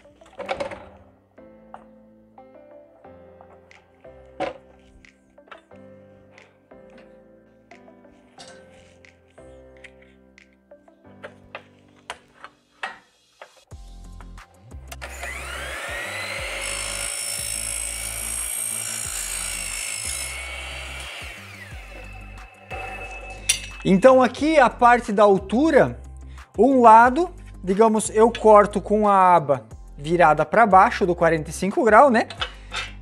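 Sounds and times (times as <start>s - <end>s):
background music: 0.0s - 33.0s
mitre saw cutting metal: 14.9s - 24.1s
saw motor whine: 15.0s - 23.9s.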